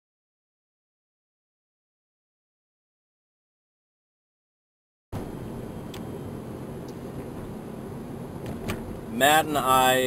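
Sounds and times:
low background rumble: 0:05.2 - 0:10.0.

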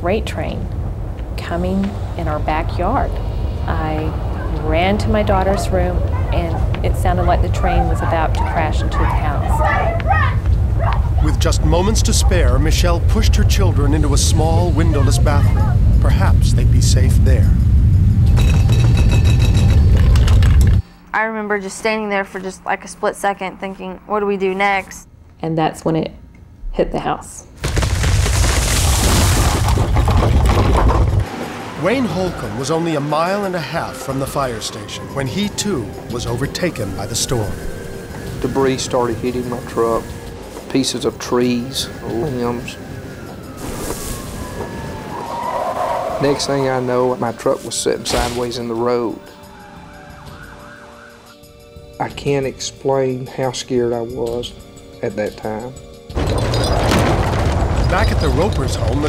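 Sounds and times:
tornado rumbling roar: 0:00.0 - 0:20.8, 0:28.3 - 0:40.4, 0:41.6 - 0:47.2, 0:56.2 - 0:59.0
truck tires skidding whine: 0:30.8 - 0:48.0, 0:48.7 - 0:51.4.

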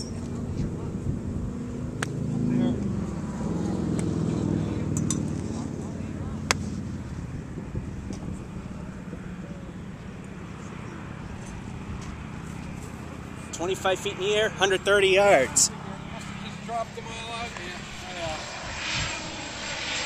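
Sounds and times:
distant traffic: 0:00.0 - 0:20.0
wind: 0:00.0 - 0:20.0
golf club striking ball: 0:02.0 - 0:02.2, 0:04.9 - 0:05.4, 0:06.4 - 0:06.8.

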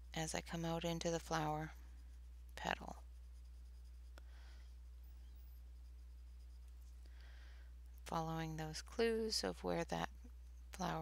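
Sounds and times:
steady low hum: 0:00.0 - 0:11.0
pencil scratching on paper: 0:00.2 - 0:07.0.

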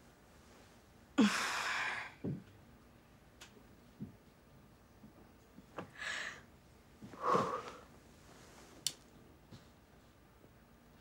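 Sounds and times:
woman sighing: 0:01.2 - 0:02.2.

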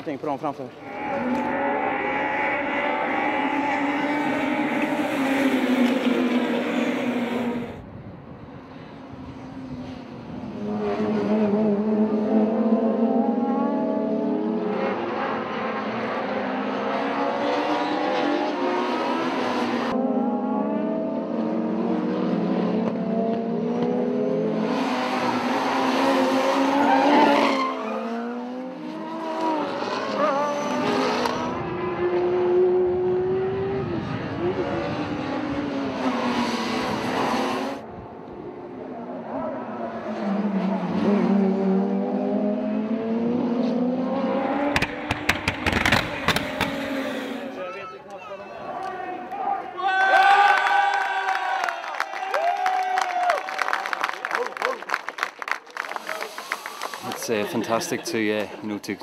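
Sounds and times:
race car engines at high revs: 0:00.8 - 0:07.8, 0:09.4 - 0:47.7.

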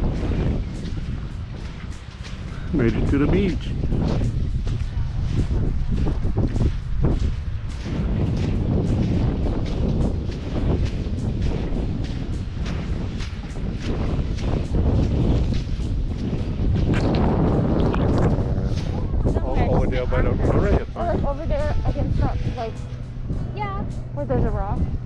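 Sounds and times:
footsteps crunching in sand: 0:00.0 - 0:25.0
wind buffeting microphone: 0:00.0 - 0:25.0.

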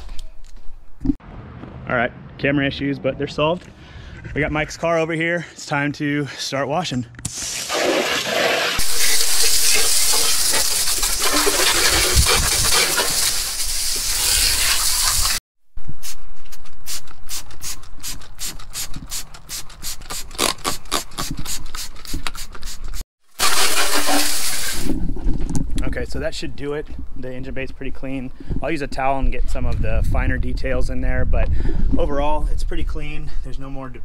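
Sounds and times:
spray bottle squirting: 0:07.2 - 0:15.4, 0:16.0 - 0:25.0
garden hose spraying water: 0:07.3 - 0:15.4, 0:21.2 - 0:24.9.

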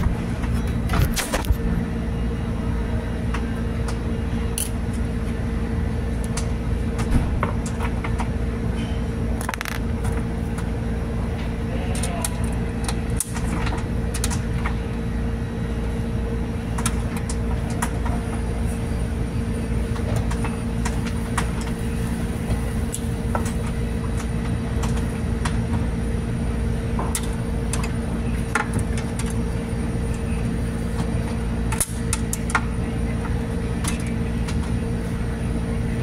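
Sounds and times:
low machinery hum: 0:00.0 - 0:36.0.

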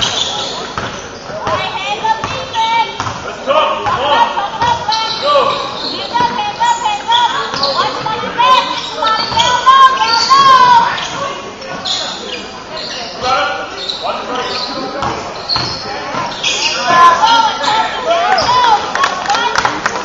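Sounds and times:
basketball bouncing: 0:00.0 - 0:04.0, 0:15.0 - 0:17.2
players' voices: 0:00.0 - 0:20.0
sneakers squeaking: 0:00.0 - 0:20.0.

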